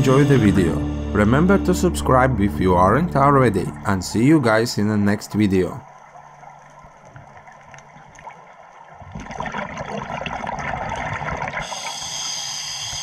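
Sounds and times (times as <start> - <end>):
underwater breath bubbling: 9.1 - 13.0
high hiss: 11.6 - 13.0.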